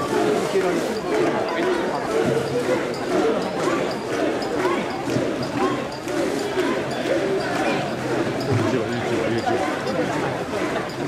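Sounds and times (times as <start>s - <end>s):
crowd shouting and calling: 0.0s - 11.0s.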